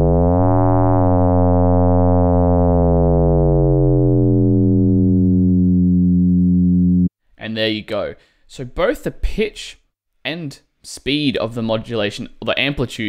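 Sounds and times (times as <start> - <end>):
synthesizer fm tone: 0.0 - 7.1.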